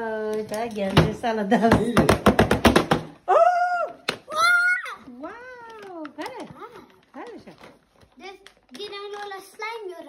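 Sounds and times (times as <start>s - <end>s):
person exclaiming ooh: 3.3s - 5.0s.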